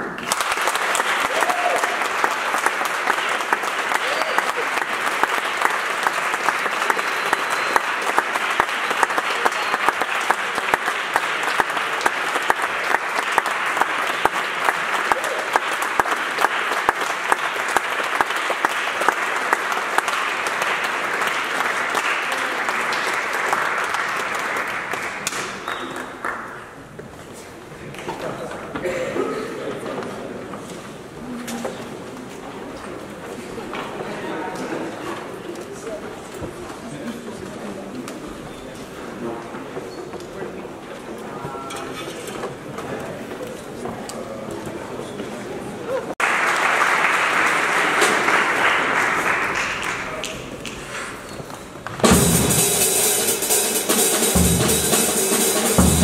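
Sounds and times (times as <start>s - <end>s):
audience applauding: 0.0s - 26.9s, 46.0s - 51.1s.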